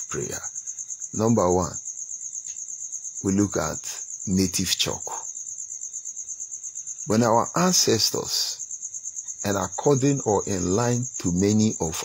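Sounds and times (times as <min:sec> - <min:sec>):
insects chirping in pulsing trill: 0:00.0 - 0:12.0.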